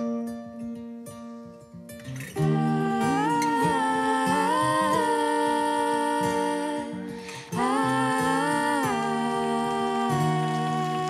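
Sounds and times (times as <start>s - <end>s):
women humming a harmony: 2.4s - 11.0s.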